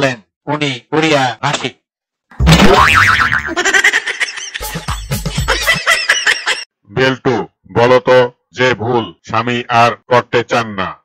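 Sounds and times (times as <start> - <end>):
cartoon boing: 2.4 - 3.6.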